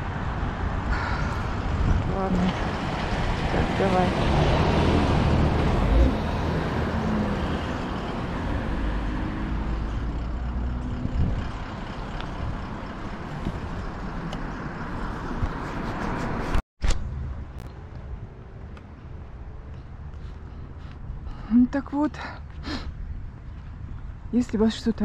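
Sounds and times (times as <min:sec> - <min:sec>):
car driving off: 0:01.0 - 0:15.6.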